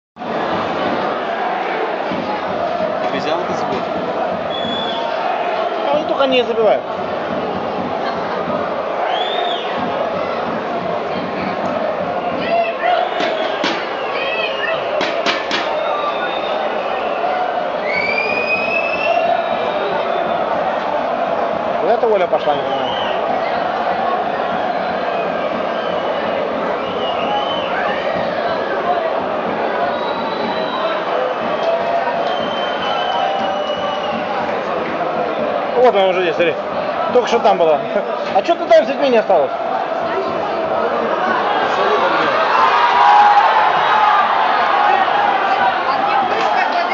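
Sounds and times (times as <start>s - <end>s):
stadium crowd din: 0.2s - 46.9s
high whistles: 4.5s - 5.2s, 9.0s - 9.8s, 12.3s - 15.0s, 15.6s - 20.5s, 24.8s - 28.1s, 29.9s - 31.1s, 32.2s - 34.4s
sharp knocks: 13.2s - 14.0s, 15.0s - 15.8s.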